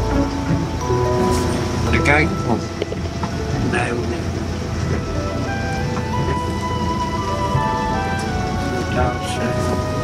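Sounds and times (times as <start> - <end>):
motorhome rumbling on road: 0.0 - 10.0
music of long held notes: 0.0 - 10.0.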